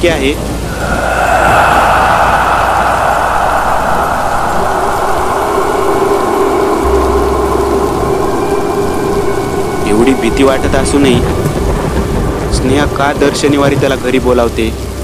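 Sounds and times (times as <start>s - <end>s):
rainstorm rushing: 0.0s - 15.0s
low steady hum: 0.4s - 12.4s.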